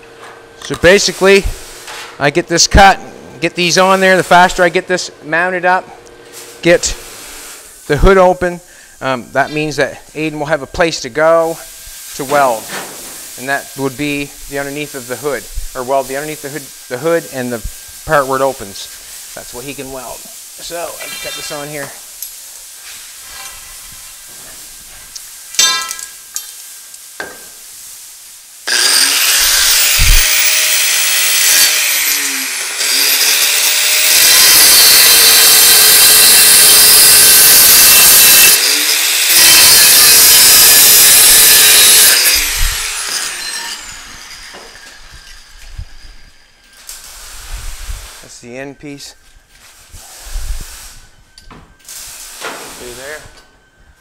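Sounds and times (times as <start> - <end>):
angle grinder cutting steel: 19.6 - 22.0, 28.6 - 47.0
metal clink: 25.6 - 26.5.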